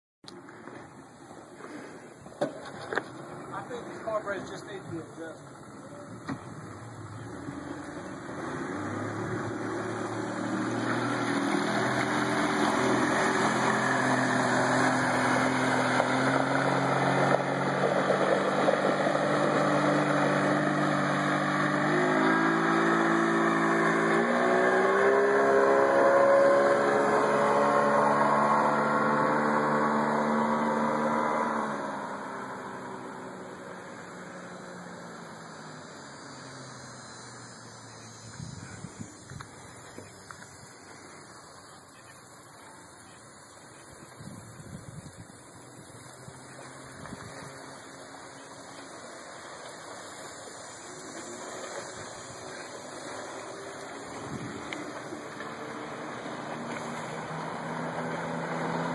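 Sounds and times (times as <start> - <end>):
outboard motor boat passing: 0.4 - 58.9.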